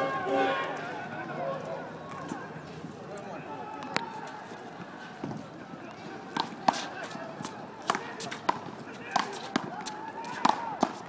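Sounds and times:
distant overlapping voices: 0:00.0 - 0:11.0.

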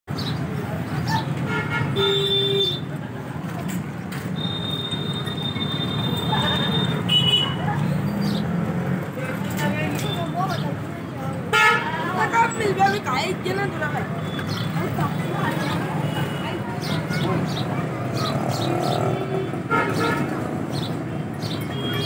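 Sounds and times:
traffic rumble: 0:00.1 - 0:22.0
voices talking: 0:00.2 - 0:22.0
vehicle horn: 0:01.5 - 0:02.8, 0:19.6 - 0:20.3.

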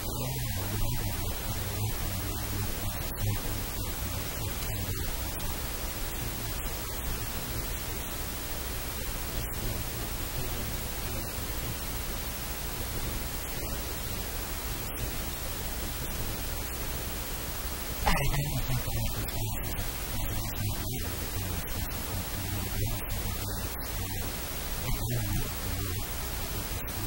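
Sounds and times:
steady static hiss: 0:00.0 - 0:27.0.

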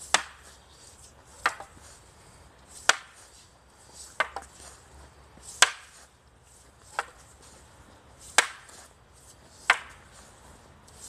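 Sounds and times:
wooden staffs clacking together: 0:00.1 - 0:00.5, 0:01.4 - 0:01.8, 0:02.8 - 0:03.2, 0:04.0 - 0:04.7, 0:05.5 - 0:06.0, 0:08.3 - 0:08.9, 0:09.6 - 0:10.1.

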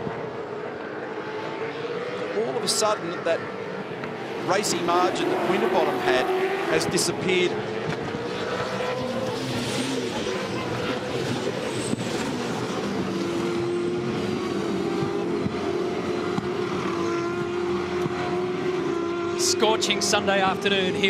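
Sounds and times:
race car engines: 0:00.0 - 0:21.0.

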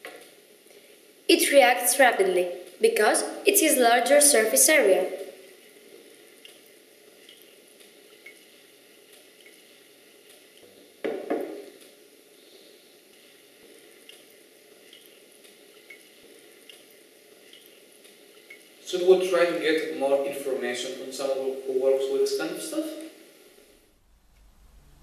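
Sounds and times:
glass flask knocking on table: 0:11.0 - 0:11.6.

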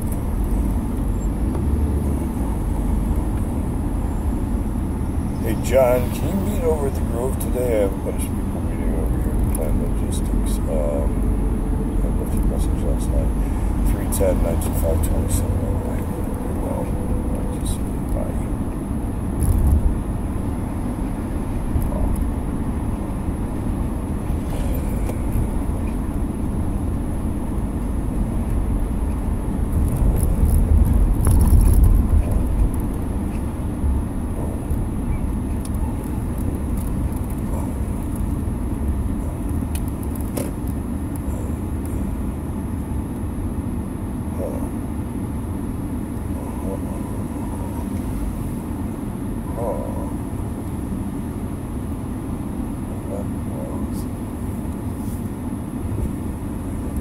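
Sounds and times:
car engine and road rumble: 0:00.0 - 0:57.0.

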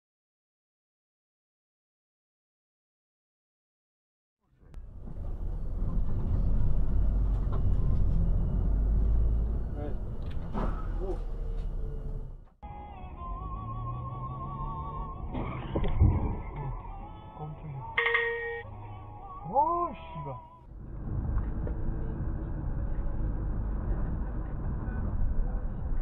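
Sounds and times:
car engine and road rumble: 0:04.4 - 0:26.0
music or voices in car cabin: 0:12.6 - 0:20.7, 0:21.9 - 0:26.0
short tone: 0:18.0 - 0:18.9.

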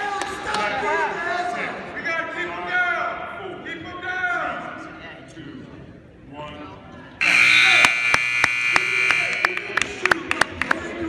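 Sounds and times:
scoreboard buzzer: 0:07.2 - 0:09.8.

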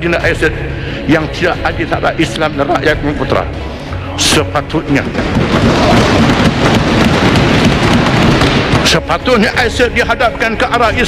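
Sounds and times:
loud rumbling noise: 0:03.4 - 0:10.0.

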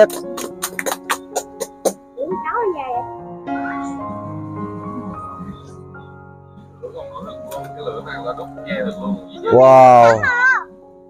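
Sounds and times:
soft sustained background music: 0:00.0 - 0:11.0
man speaking: 0:09.5 - 0:10.2.

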